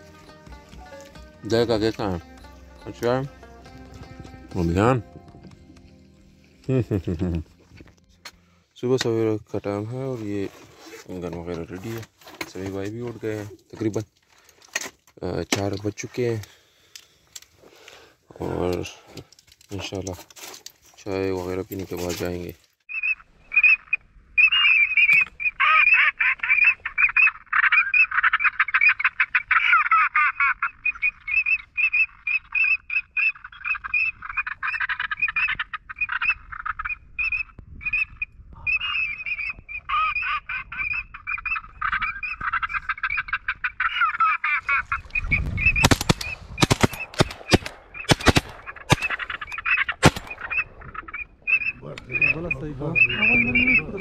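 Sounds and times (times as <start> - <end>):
flock of ducks calling: 22.9 - 46.4, 47.0 - 54.0.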